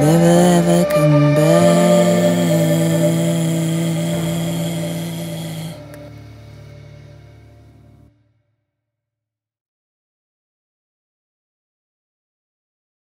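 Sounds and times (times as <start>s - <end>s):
kamancheh and piano chord: 0.0s - 8.1s.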